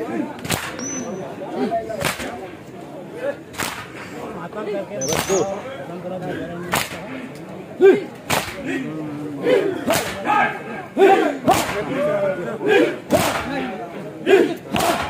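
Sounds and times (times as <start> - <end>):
crowd shouting and chanting: 0.0 - 15.0
men slapping chests in unison: 0.3 - 0.8, 1.9 - 2.5, 3.5 - 4.0, 5.1 - 5.5, 6.6 - 7.4, 8.1 - 8.8, 9.8 - 10.3, 11.1 - 11.9, 13.1 - 13.7, 14.3 - 15.0.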